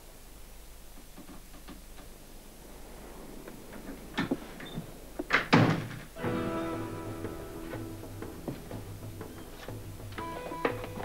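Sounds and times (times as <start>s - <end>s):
ominous music chord: 6.2s - 11.0s.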